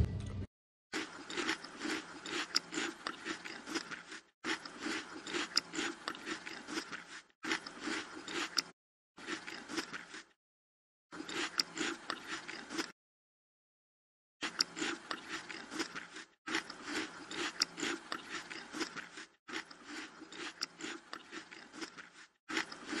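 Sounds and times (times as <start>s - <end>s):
close chewing and crunching: 0.9s - 10.4s, 11.1s - 13.0s, 14.4s - 23.0s.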